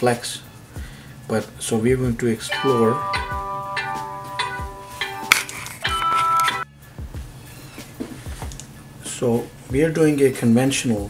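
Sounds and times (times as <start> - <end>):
low sustained tone: 2.5 - 6.6
bell-like chime music: 2.5 - 6.7.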